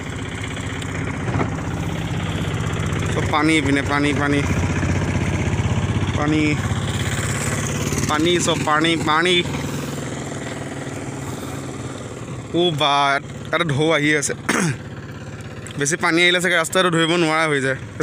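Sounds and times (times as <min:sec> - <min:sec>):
motorcycle engine idling: 0:00.0 - 0:18.0.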